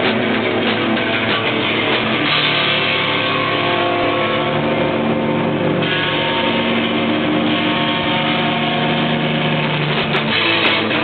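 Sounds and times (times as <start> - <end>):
bass guitar: 0.0 - 11.0
distorted electric guitar: 0.0 - 11.0
live rock band playing loud: 0.0 - 11.0.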